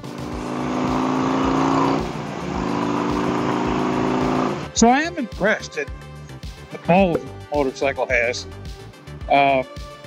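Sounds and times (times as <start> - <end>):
motorcycle accelerating: 0.0 - 4.8.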